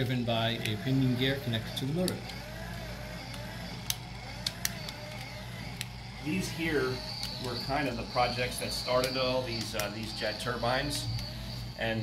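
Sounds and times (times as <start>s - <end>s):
whir of plastic gears: 0.0s - 12.0s
sharp clicks: 1.7s - 6.0s, 7.0s - 10.2s.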